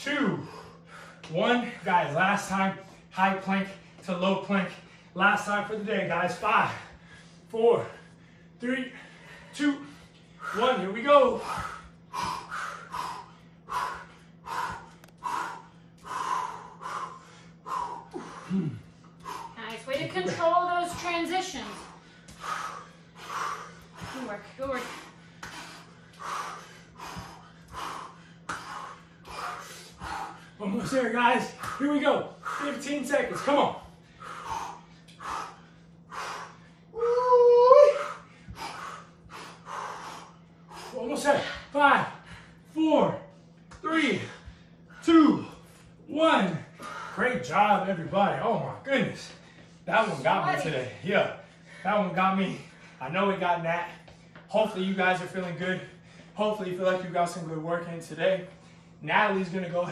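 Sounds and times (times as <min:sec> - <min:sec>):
heavy rapid breathing: 0:00.0 - 0:59.9.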